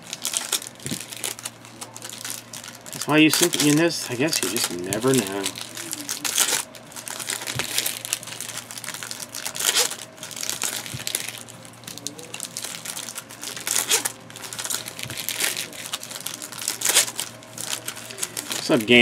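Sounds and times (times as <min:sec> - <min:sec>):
trading cards rustling and flicking: 0:00.0 - 0:19.0.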